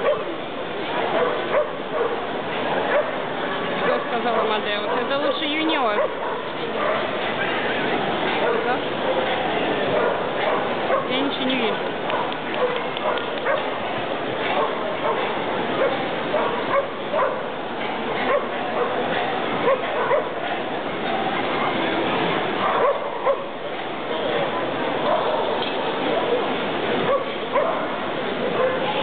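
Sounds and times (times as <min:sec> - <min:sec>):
dogs barking and yipping: 0:00.0 - 0:03.2, 0:03.8 - 0:07.7, 0:08.3 - 0:11.3, 0:12.1 - 0:13.7, 0:14.5 - 0:20.4, 0:22.6 - 0:23.6, 0:25.0 - 0:29.0
crowd chatter: 0:00.0 - 0:29.0.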